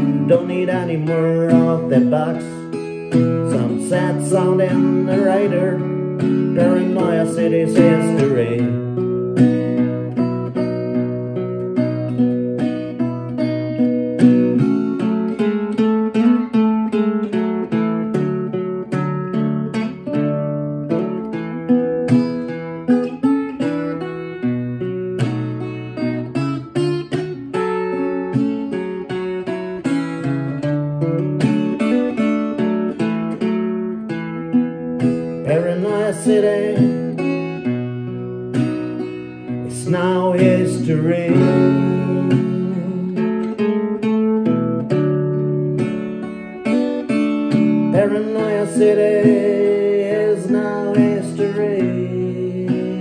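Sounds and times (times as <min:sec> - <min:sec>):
acoustic guitar strumming chords: 0:00.0 - 0:53.0.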